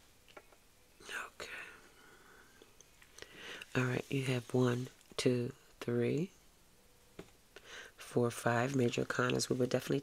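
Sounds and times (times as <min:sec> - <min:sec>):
soft whisper: 0:01.0 - 0:02.6, 0:03.3 - 0:05.7.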